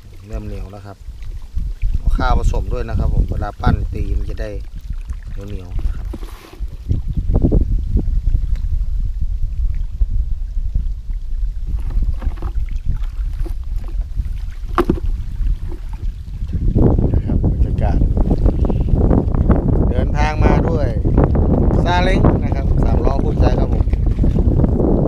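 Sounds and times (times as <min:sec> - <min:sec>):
wind buffeting microphone: 0:00.0 - 0:25.0
handling clicks and rustles: 0:11.8 - 0:12.6, 0:14.6 - 0:16.0.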